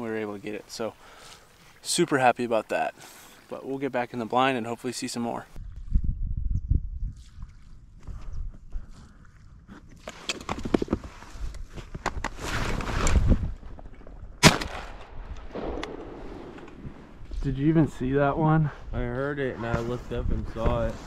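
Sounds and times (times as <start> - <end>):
shotgun shot: 14.4 - 17.2.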